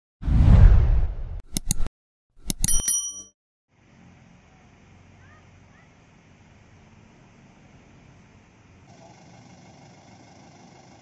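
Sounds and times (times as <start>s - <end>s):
quick clicks: 1.5s - 3.0s
high bell ring: 2.6s - 3.3s.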